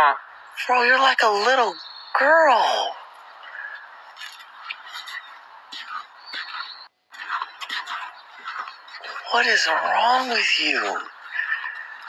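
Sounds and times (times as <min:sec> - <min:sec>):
faint bird chirps: 0:01.6 - 0:09.4, 0:10.0 - 0:12.0.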